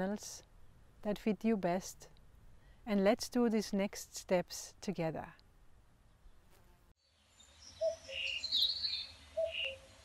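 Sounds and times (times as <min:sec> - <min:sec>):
birds chirping: 0:07.1 - 0:10.0.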